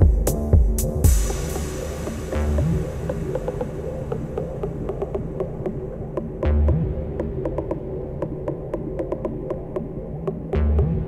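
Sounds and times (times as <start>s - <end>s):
heavy low bass hit: 0.0s - 7.2s
dark techno track: 0.0s - 11.0s.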